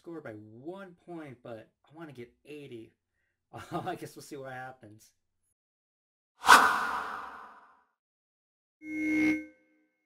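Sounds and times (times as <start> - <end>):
whoosh: 6.4 - 7.8.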